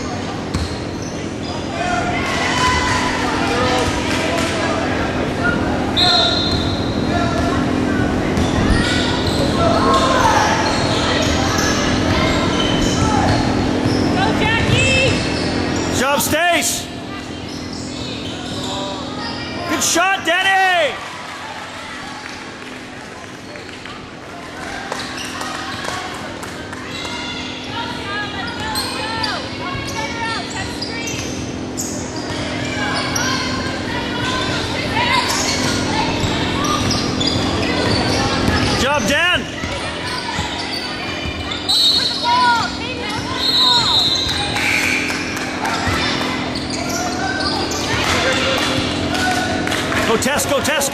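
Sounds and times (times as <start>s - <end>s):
sneaker squeaks: 0.0s - 2.8s, 5.4s - 19.8s, 24.8s - 25.9s, 26.8s - 49.6s
voices of players and spectators: 0.0s - 50.9s.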